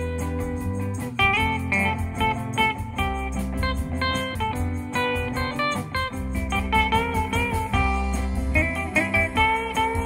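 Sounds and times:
drums: 0.0s - 10.0s
electric bass: 0.0s - 10.0s
lead electric guitar: 0.0s - 10.0s.

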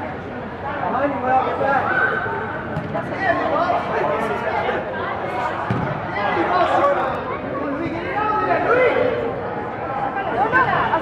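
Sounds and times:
voices calling out and chattering: 0.0s - 11.0s.

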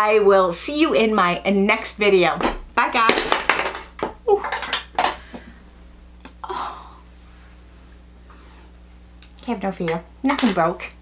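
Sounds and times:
small hard objects clattering: 2.4s - 5.4s.

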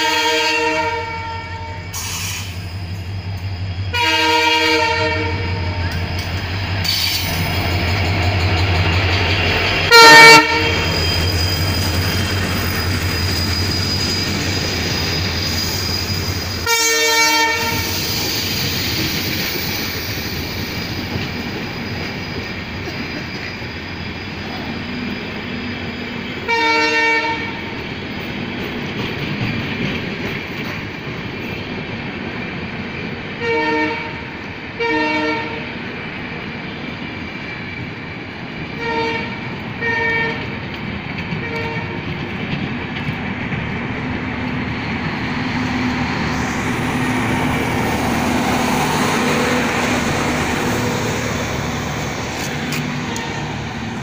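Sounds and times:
train horn blasts: 0.0s - 2.0s, 3.9s - 6.0s, 9.8s - 11.0s, 16.6s - 18.0s, 26.4s - 27.7s, 33.4s - 35.7s, 38.8s - 40.5s, 41.4s - 42.0s, 52.6s - 53.7s
train wheels on rails: 0.0s - 54.0s
locomotive engine hum: 0.9s - 34.7s, 35.8s - 54.0s.

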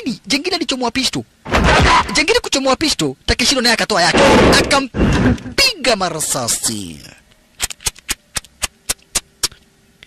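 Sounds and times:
loud gunshot with low boom: 4.1s - 4.7s.

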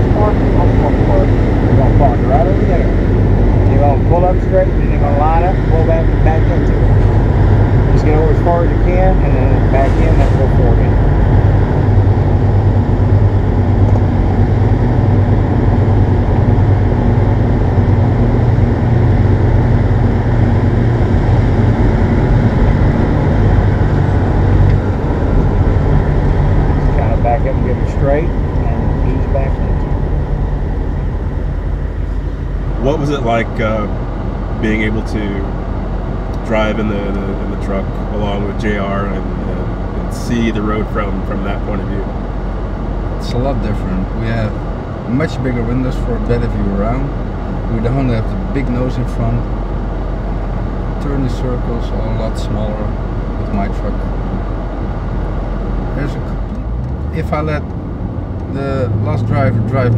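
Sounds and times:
diesel truck engine running: 0.0s - 59.9s.

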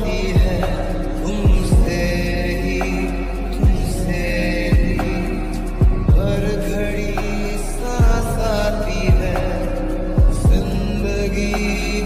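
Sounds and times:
deep kick drum: 0.4s - 0.8s, 1.5s - 2.2s, 3.6s - 4.1s, 4.7s - 5.2s, 5.8s - 6.6s, 8.0s - 8.5s, 9.1s - 9.4s, 10.2s - 10.9s.

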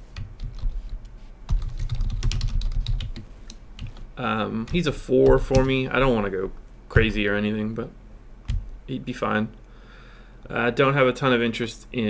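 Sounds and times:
typing on computer keyboard: 1.5s - 4.0s.

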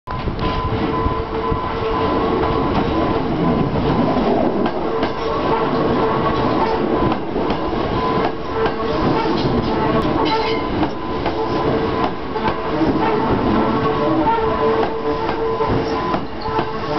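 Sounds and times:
continuous steady tone: 0.1s - 16.9s
train wheels rumbling: 0.1s - 16.9s.

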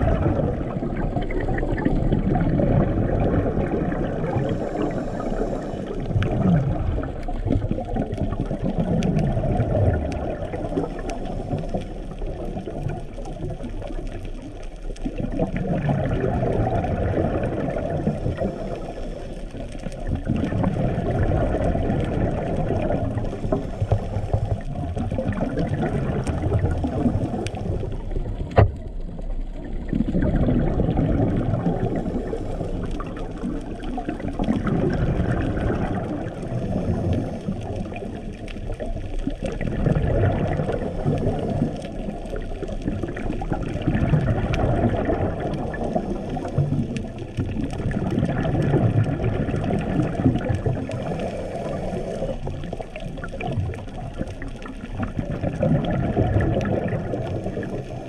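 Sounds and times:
exhaled bubbles: 0.0s - 58.0s
diver breathing through regulator: 4.1s - 6.6s, 23.2s - 24.6s, 36.6s - 38.0s, 50.9s - 52.9s.

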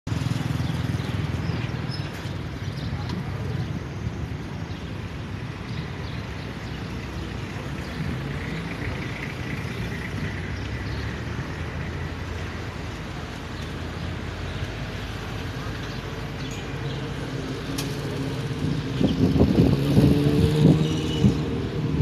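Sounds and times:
cars passing: 0.1s - 22.0s.

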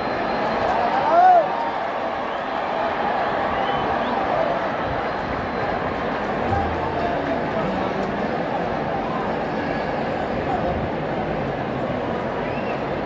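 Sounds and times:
loud call from crowd: 0.0s - 10.5s
stadium crowd shouting: 0.0s - 13.0s.

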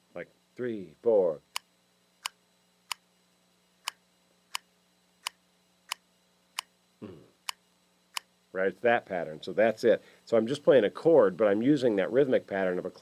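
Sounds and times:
faint hum: 0.0s - 13.0s
sharp clicks in clave rhythm: 1.5s - 3.0s, 7.4s - 8.3s.

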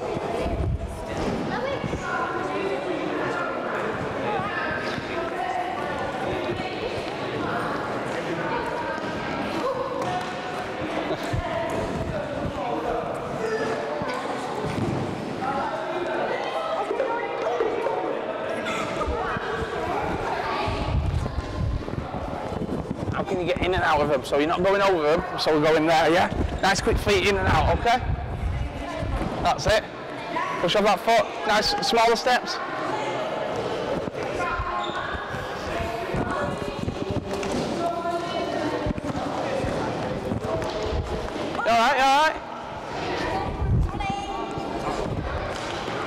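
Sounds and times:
children chattering: 0.0s - 23.5s, 28.4s - 46.0s
children's feet running and landing: 35.7s - 41.6s.

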